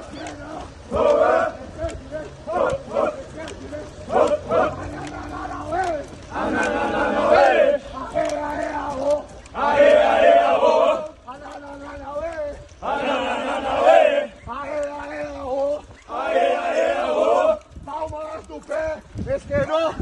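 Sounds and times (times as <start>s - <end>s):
men chanting and shouting: 0.0s - 20.0s.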